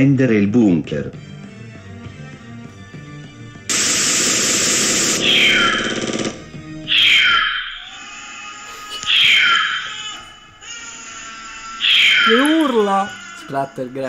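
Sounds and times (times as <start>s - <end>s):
burst of harsh noise: 3.7s - 6.4s
high shrieks falling in pitch: 4.0s - 8.1s, 9.1s - 10.2s, 11.8s - 12.6s
faint music: 5.6s - 14.0s.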